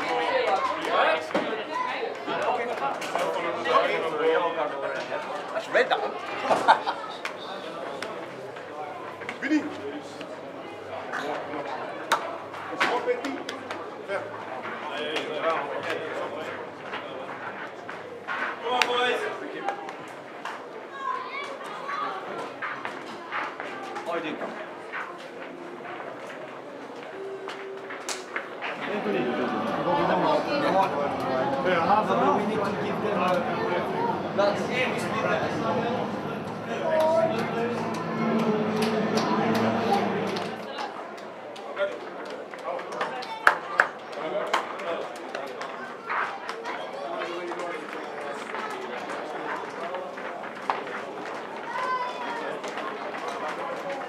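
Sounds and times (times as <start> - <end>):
men chatting: 0.0 - 17.6, 28.6 - 40.8
low hum: 31.1 - 40.7.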